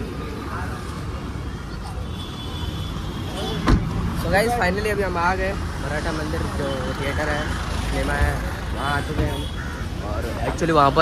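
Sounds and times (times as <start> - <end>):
street traffic: 0.0 - 11.0
car door slamming: 3.6 - 4.0.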